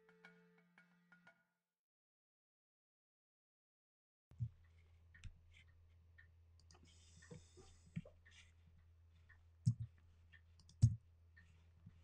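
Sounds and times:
faint clicks: 4.4s - 8.5s.

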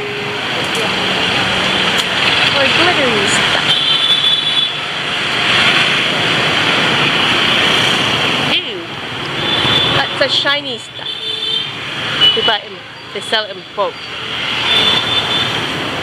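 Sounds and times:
people's voices: 0.0s - 3.8s, 8.5s - 8.9s, 10.0s - 11.2s, 12.4s - 14.0s
motorbike and road traffic: 0.0s - 16.0s.

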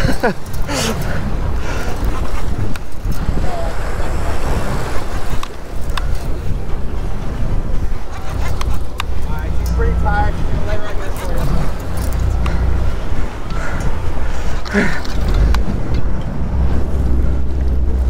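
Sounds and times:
wind: 0.0s - 18.0s
faint voices: 0.6s - 15.9s
boat engine running: 1.0s - 18.0s.

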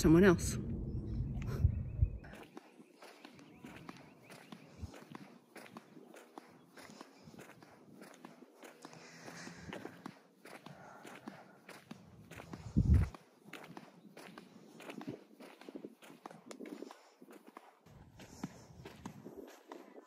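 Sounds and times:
loud low rumble: 0.0s - 2.3s, 12.7s - 13.1s
flip-flop footsteps on asphalt: 2.2s - 20.0s.

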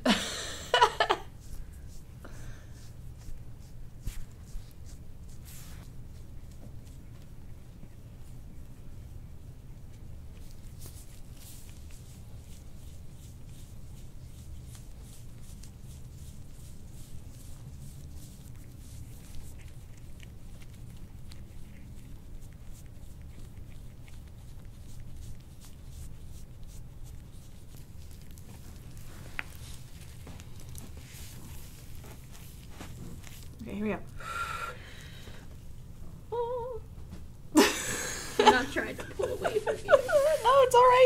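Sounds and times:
low room hum: 0.0s - 41.0s
low steady rumble: 0.0s - 41.0s
scraping tool stroking skin: 10.4s - 34.2s, 38.8s - 41.0s.

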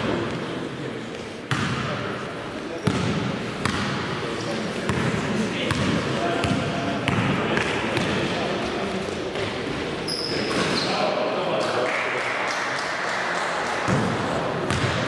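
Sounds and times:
players' voices: 0.0s - 15.0s
basketball bouncing on hall floor: 1.5s - 2.0s, 2.8s - 4.1s, 4.8s - 8.7s, 13.9s - 15.0s.

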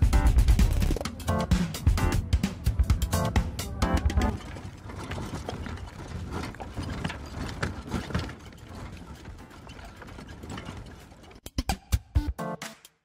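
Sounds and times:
cart rattling over rough road: 0.0s - 11.6s
horse hooves clip-clopping: 2.4s - 11.5s
wooden cart knocks: 2.8s - 11.4s.

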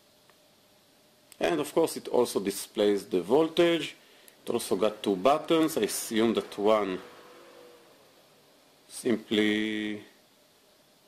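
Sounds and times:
man speaking: 1.4s - 7.4s, 8.9s - 10.2s.

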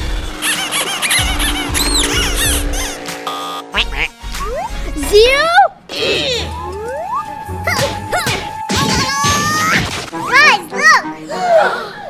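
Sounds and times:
cartoon sound effects: 3.7s - 6.7s.

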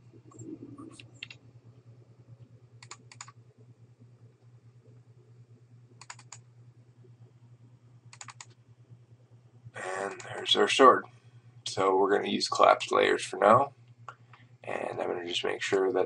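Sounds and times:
steady low hum: 0.0s - 16.0s
computer mouse clicks: 0.3s - 1.4s, 2.8s - 3.4s, 6.0s - 6.5s, 8.1s - 8.6s.

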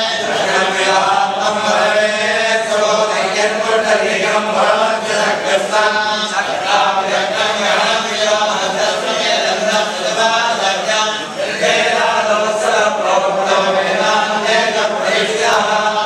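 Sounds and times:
men chanting together: 0.0s - 16.0s.

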